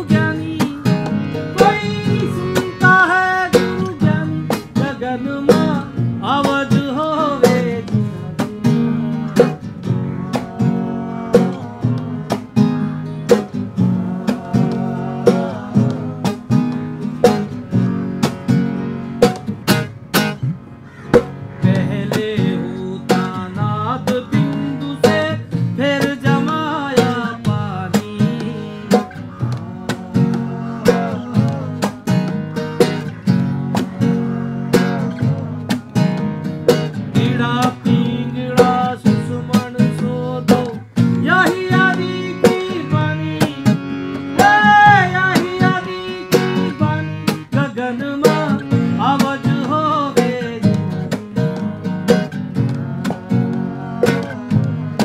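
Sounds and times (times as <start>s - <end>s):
man singing: 0.0s - 17.3s, 21.6s - 55.0s
acoustic guitar strumming: 0.0s - 55.0s.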